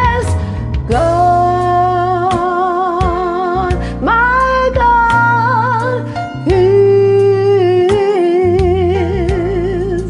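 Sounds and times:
woman singing gospel: 0.0 - 10.0.

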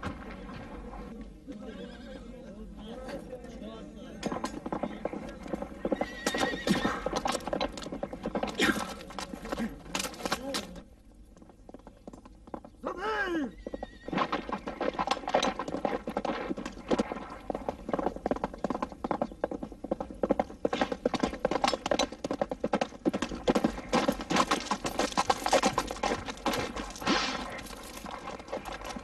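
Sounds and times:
horse whinnying: 1.7 - 2.2, 5.8 - 7.5, 12.8 - 15.0
hoof clops: 4.2 - 12.9, 13.6 - 29.0.

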